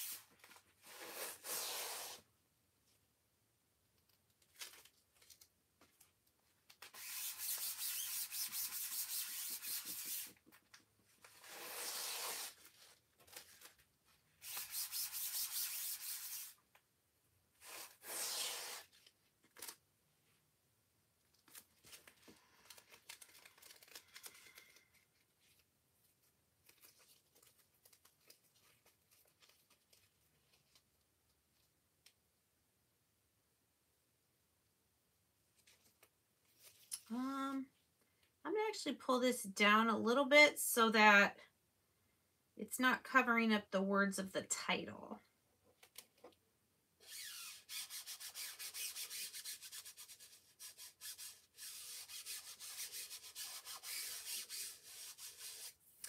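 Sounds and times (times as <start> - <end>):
raspy ripping peels of stencil: 6.7 - 10.4, 11.2 - 13.8, 17.6 - 19.8, 21.4 - 25.7, 47.0 - 55.8.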